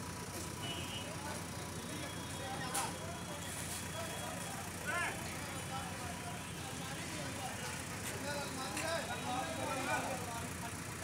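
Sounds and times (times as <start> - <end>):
diesel engine running: 0.0 - 11.0
men's voices: 3.8 - 11.0.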